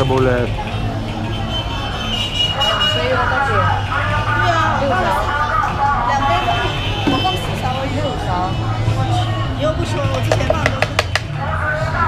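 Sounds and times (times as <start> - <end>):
voices: 0.0 - 12.0.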